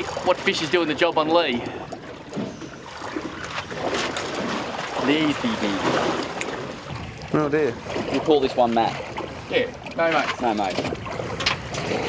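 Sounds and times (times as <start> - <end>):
water lapping against boat hull: 0.0 - 12.0.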